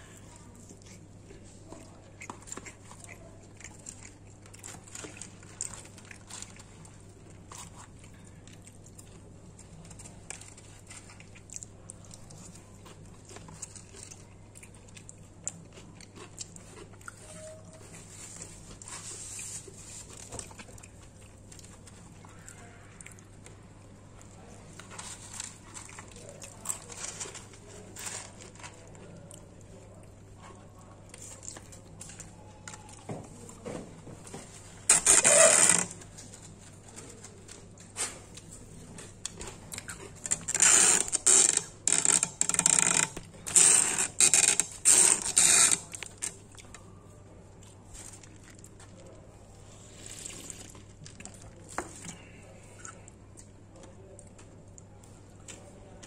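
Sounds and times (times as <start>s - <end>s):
packaging scraping and rustling: 34.4s - 38.2s.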